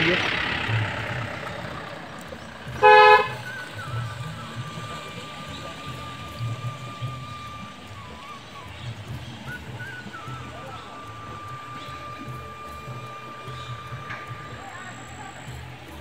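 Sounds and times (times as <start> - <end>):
vehicle horn toot: 2.7 - 7.7.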